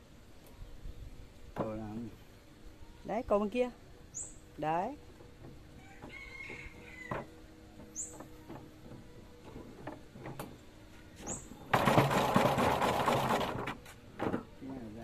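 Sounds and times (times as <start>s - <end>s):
bird chirps: 4.1s - 4.4s, 7.9s - 8.3s, 11.2s - 11.6s
honey extractor rattling: 11.7s - 13.8s.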